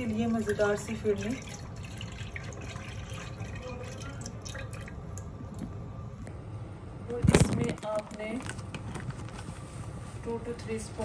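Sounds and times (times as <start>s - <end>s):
milk pouring into saucepan: 0.1s - 5.6s.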